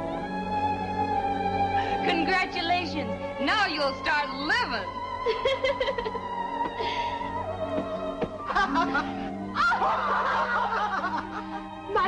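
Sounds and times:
film music with low note: 0.0s - 12.0s
woman chuckling: 5.3s - 6.2s.

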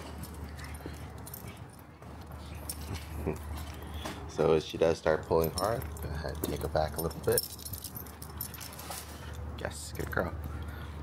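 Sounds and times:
leash hardware jingling: 0.0s - 10.6s.

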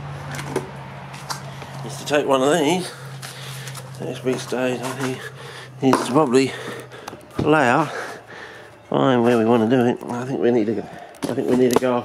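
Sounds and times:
steady low hum: 0.0s - 11.5s.

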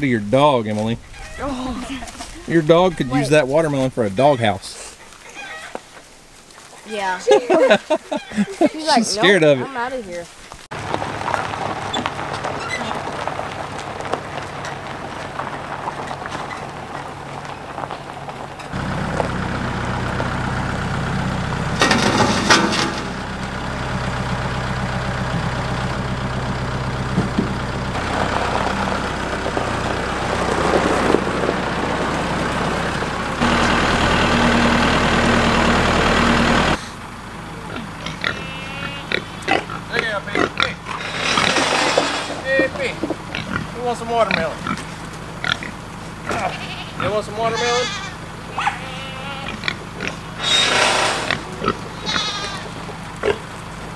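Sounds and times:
tractor engine running: 7.7s - 53.9s
short clatter: 21.8s - 23.2s, 40.9s - 42.5s
pigs grunting and squealing: 37.6s - 53.5s.

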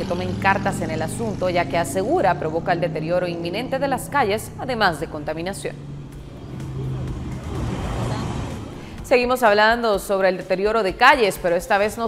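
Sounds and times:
vehicle engine hum: 0.0s - 9.3s
road noise: 0.0s - 9.9s.

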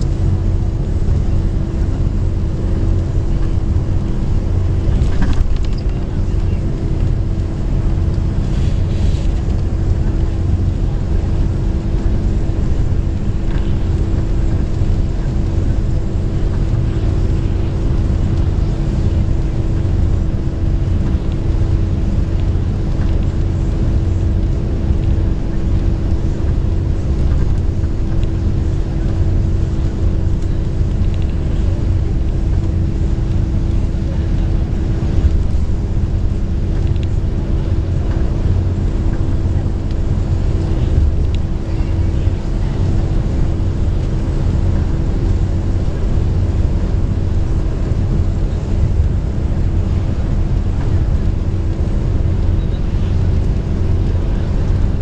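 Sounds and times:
bus engine and road noise: 0.0s - 55.0s.

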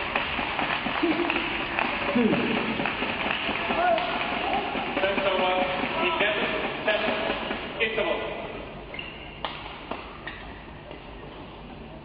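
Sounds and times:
sharp hand claps: 0.0s - 7.6s.

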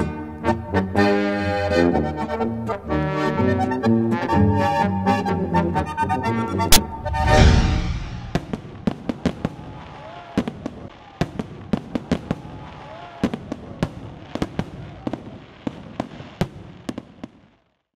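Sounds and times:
fireworks bangs and crackles: 7.6s - 17.9s.

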